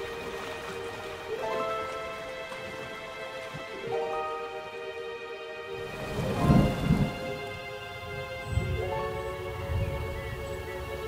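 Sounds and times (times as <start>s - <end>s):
faint sustained music notes: 0.0s - 11.0s
rain: 0.0s - 11.0s
deep thunder rumble: 6.0s - 7.4s.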